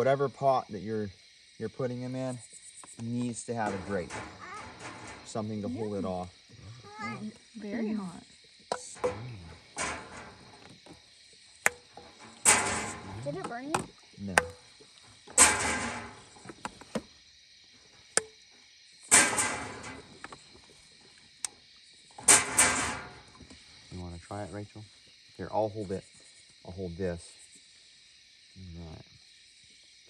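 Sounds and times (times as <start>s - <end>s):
crickets chirping: 0.0s - 30.0s.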